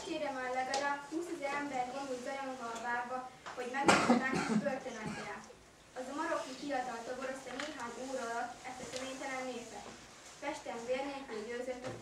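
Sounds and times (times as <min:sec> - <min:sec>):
girl reciting: 0:00.0 - 0:12.0.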